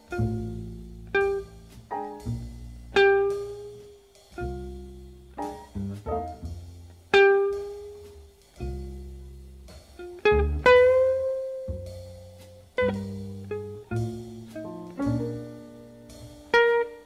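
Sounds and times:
jazz plucked string notes: 0:00.0 - 0:17.0.

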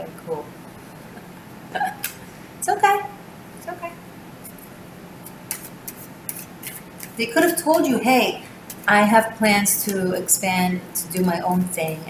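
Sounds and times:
cards being shuffled: 0:04.4 - 0:08.0.

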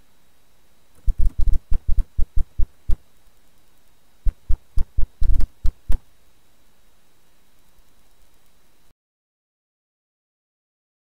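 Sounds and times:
marker pen tapping strokes: 0:01.0 - 0:03.0, 0:04.3 - 0:06.0.

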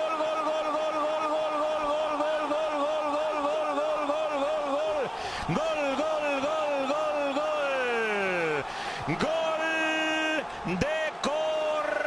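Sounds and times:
commentator chanting goal call: 0:00.0 - 0:12.0.

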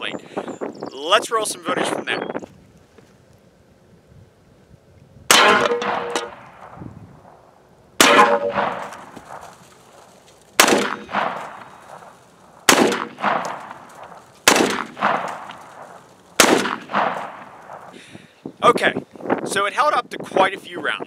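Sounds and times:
gunshots: 0:05.3 - 0:06.8, 0:08.0 - 0:09.5, 0:10.6 - 0:18.0.

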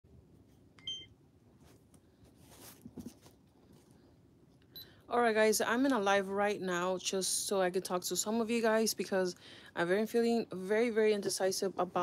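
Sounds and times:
low room noise: 0:00.1 - 0:12.0
short electronic beep: 0:00.8 - 0:01.1.

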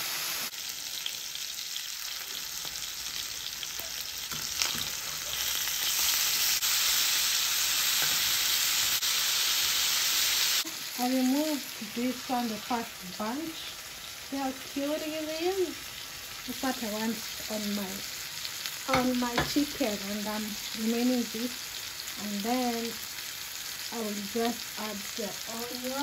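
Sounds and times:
chicken sizzling in hot oil: 0:00.0 - 0:26.0.

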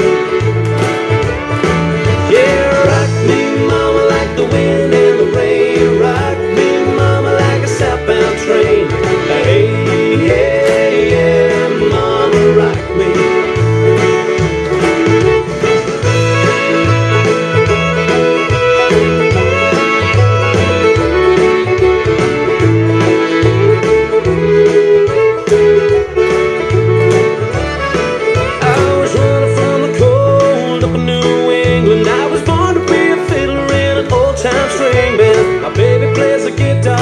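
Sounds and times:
country music: 0:00.0 - 0:37.0.

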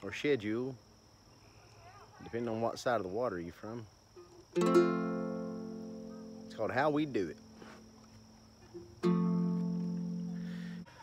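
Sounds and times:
ukulele chord strummed: 0:04.5 - 0:07.6, 0:08.8 - 0:10.8.

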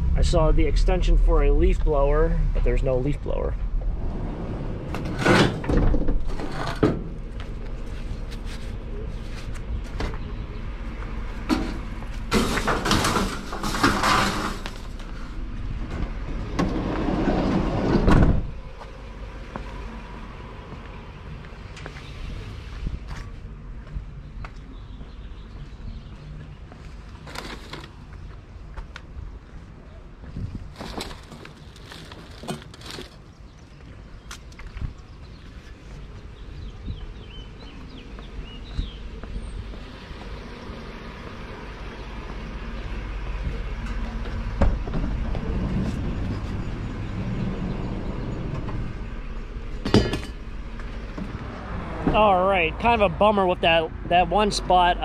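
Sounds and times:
steady low rumble: 0:00.0 - 0:27.2, 0:33.6 - 0:55.0
junk knocking and clattering: 0:04.8 - 0:07.3, 0:11.4 - 0:15.1, 0:49.7 - 0:52.2.

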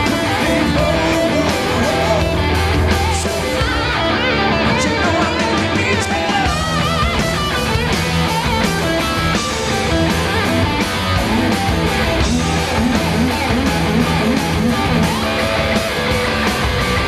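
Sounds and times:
distorted electric guitar: 0:00.0 - 0:17.0
drums: 0:00.0 - 0:17.0
electric bass: 0:00.0 - 0:17.0.

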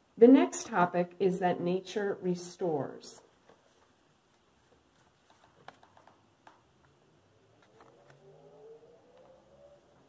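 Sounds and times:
faint hum rising in pitch: 0:07.8 - 0:10.0.

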